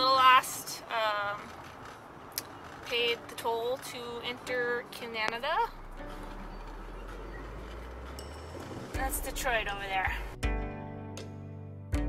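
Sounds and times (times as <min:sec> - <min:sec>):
car cabin road rumble: 0:00.0 - 0:10.4.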